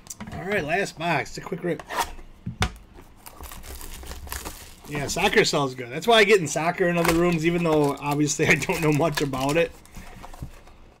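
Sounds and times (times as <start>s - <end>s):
plastic wrapping crinkling and tearing: 3.0s - 5.5s, 6.1s - 10.4s.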